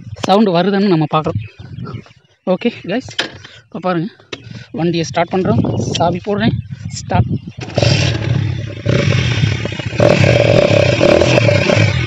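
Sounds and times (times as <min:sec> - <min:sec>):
motorcycle engine revving: 0:07.6 - 0:12.0.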